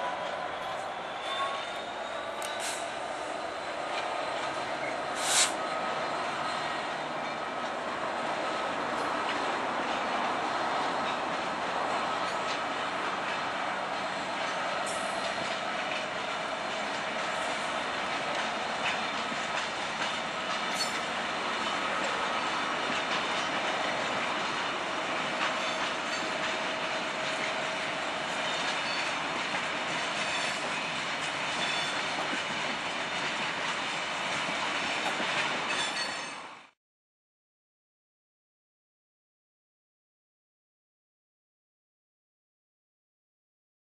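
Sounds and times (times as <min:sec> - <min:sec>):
train wheels on rail: 0:00.0 - 0:36.8
train clicks: 0:02.4 - 0:03.0, 0:07.2 - 0:36.5.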